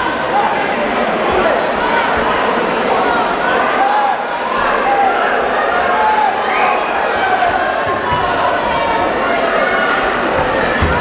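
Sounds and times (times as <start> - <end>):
crowd shouting and cheering: 0.0 - 11.0.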